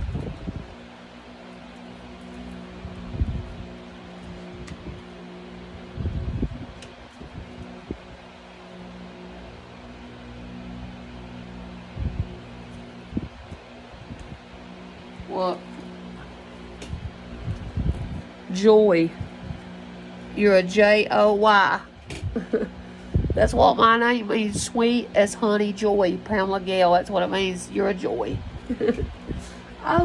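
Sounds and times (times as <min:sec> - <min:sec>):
low hum with faint hiss: 0:00.0 - 0:30.0.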